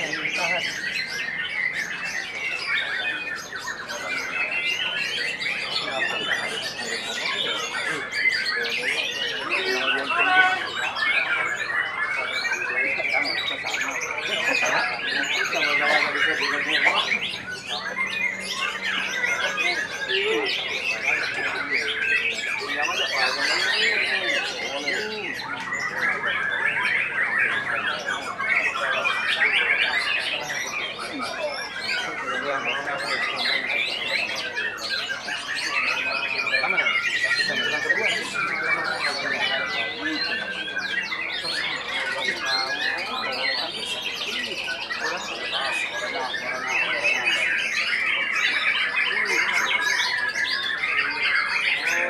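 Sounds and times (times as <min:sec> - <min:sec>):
other birds singing: 0:00.0 - 0:52.0.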